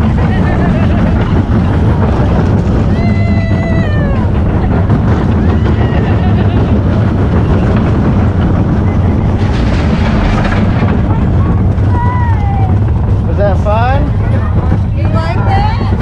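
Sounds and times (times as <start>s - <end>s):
roller coaster car rumbling: 0.0s - 16.0s
wind buffeting microphone: 0.0s - 16.0s.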